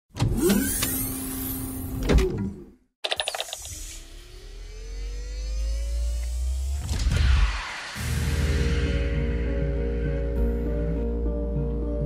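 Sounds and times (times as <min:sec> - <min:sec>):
rising whine into electric hum: 0:03.8 - 0:07.4.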